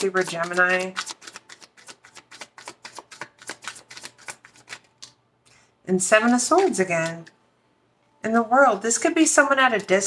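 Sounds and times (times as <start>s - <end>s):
cards being shuffled: 0.0s - 5.2s, 6.2s - 7.3s.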